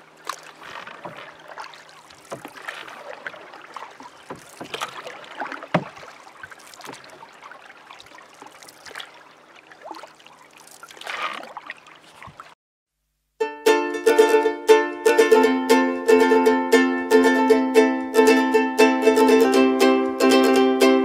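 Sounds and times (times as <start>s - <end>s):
paddle strokes: 0.0s - 12.6s
water splashing against hull: 0.0s - 12.6s.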